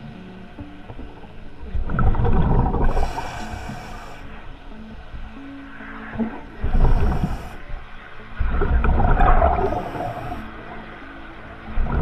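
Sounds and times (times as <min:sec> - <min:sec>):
regulator hissing inhalation: 0:02.9 - 0:04.4, 0:06.7 - 0:07.7, 0:09.6 - 0:10.5.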